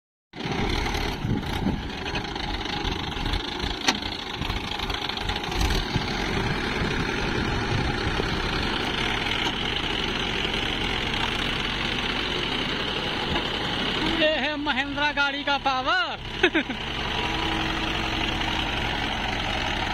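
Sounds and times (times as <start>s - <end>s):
tractor diesel engine running: 0.4s - 19.9s
rotavator churning wet mud: 3.4s - 14.2s.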